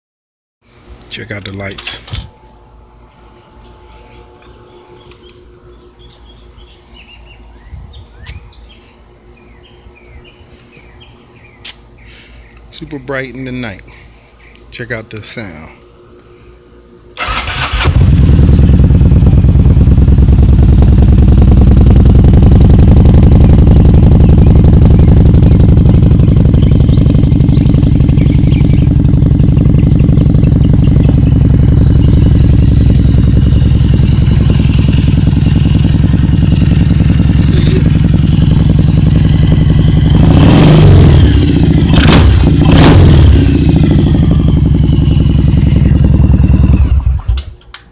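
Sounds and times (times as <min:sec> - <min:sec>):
motorcycle engine starting: 0:17.1 - 0:47.9
motorcycle engine revving: 0:17.2 - 0:47.6
motorcycle engine idling: 0:17.2 - 0:47.7.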